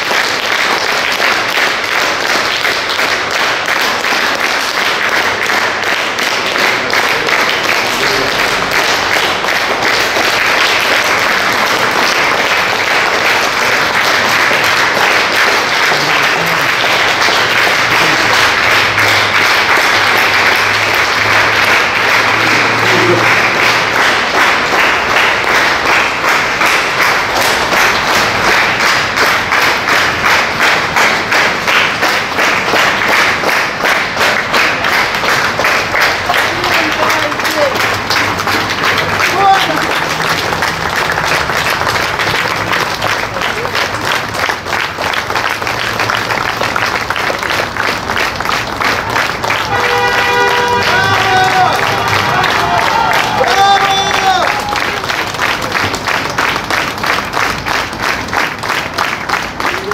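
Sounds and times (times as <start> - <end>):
crowd applauding: 0.0 - 59.9
rhythmic clapping in unison: 0.0 - 59.9.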